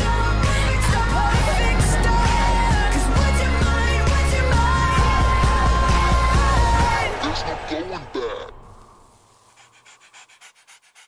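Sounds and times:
dog panting quickly: 0:09.6 - 0:11.0.

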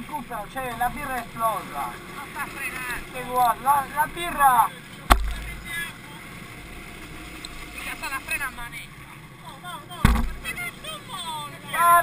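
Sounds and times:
sharp knock: 0:05.1 - 0:05.6, 0:10.0 - 0:10.5.

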